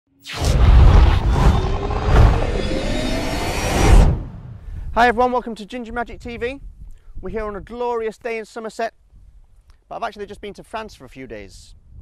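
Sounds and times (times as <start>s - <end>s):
rising tone: 0.2s - 4.8s
deep rumble: 0.3s - 5.0s
dense rushing whoosh: 0.3s - 5.0s.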